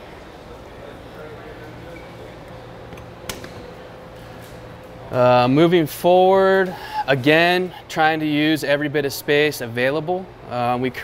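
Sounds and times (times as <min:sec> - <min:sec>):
low room tone hum: 0:00.0 - 0:11.0.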